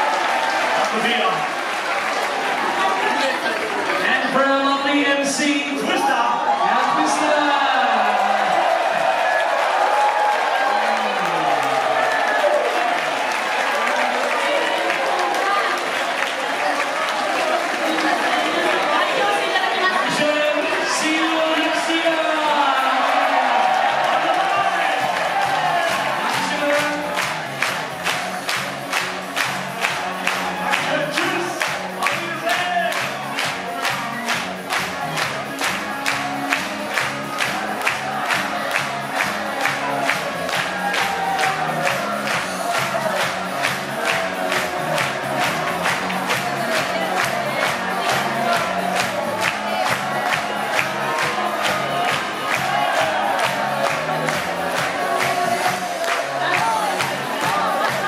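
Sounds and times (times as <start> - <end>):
crowd clapping in time: 0.0 - 4.7, 6.5 - 58.0
party band playing live: 18.9 - 58.0.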